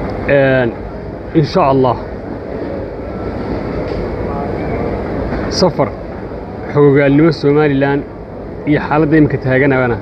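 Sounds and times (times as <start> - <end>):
faint chatter: 0.0 - 10.0
food court rumbling: 0.0 - 10.0.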